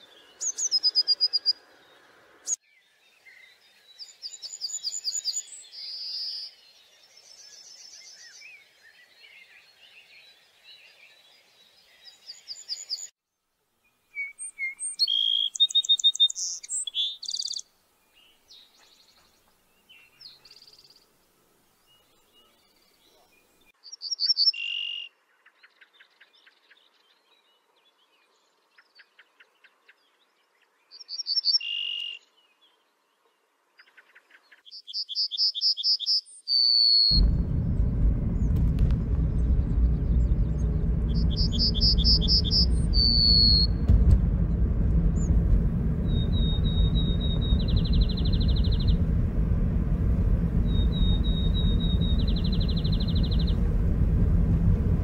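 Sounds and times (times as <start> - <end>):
birdsong whistles and trills: 0.2 - 1.6, 14.1 - 19.2, 21.9 - 30.0, 30.8 - 32.8, 33.8 - 37.2, 41.3 - 43.7, 50.7 - 53.5
car driving heard from inside: 37.1 - 55.0.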